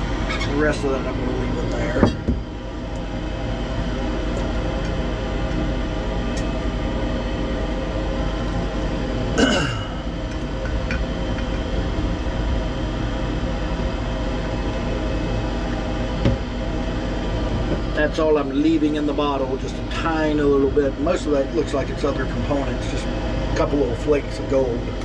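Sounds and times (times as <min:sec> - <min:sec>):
mechanical hum: 0:00.0 - 0:25.0.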